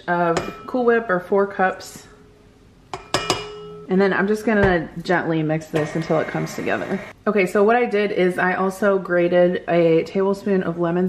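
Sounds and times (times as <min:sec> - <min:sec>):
utensil clinking on metal bowl: 0:02.9 - 0:03.8.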